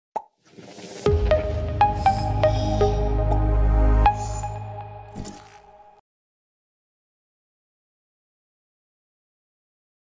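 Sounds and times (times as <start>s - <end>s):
electronic intro music: 0.8s - 6.0s.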